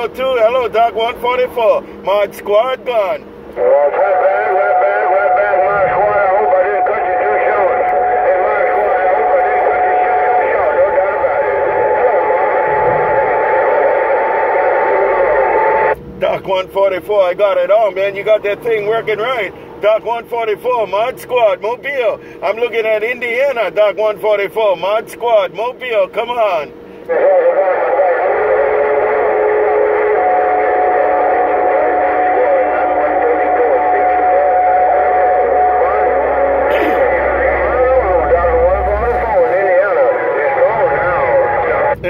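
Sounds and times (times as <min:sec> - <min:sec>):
radio static: 0:00.0 - 0:42.0
weak warbling signals: 0:03.9 - 0:16.3, 0:28.6 - 0:42.0.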